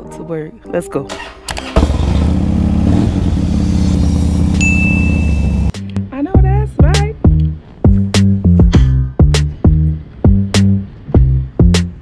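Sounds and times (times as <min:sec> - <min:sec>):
motorcycle engine idling: 0:01.7 - 0:05.7
music with a beat: 0:05.7 - 0:12.0.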